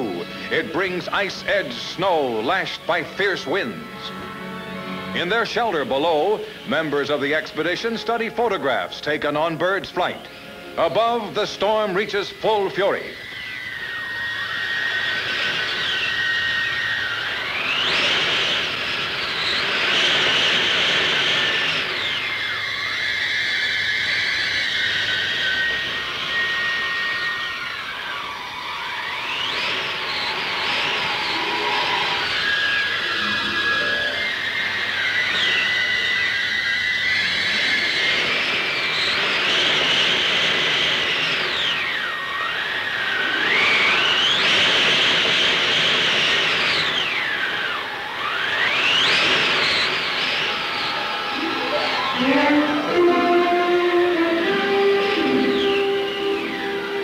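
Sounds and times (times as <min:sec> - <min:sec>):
blizzard wind with whistling gusts: 0:10.2 - 0:57.0
held high notes: 0:31.3 - 0:35.0, 0:51.0 - 0:57.0.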